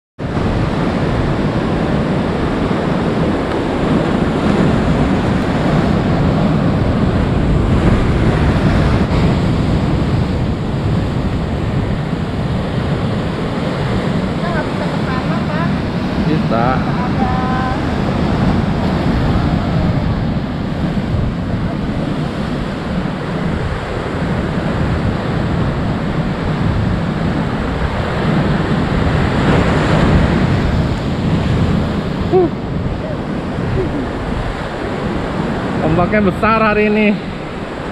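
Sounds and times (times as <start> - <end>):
surf breaking on rocks: 0.2 - 37.9
wind buffeting microphone: 0.2 - 37.9.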